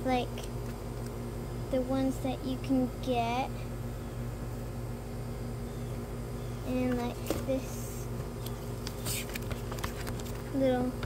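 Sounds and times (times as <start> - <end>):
steady hum with hiss: 0.0 - 11.0.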